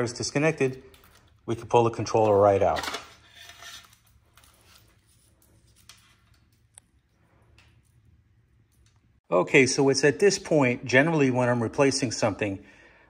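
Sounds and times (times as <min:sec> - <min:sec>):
faint rustling of wiring: 0:00.0 - 0:09.2.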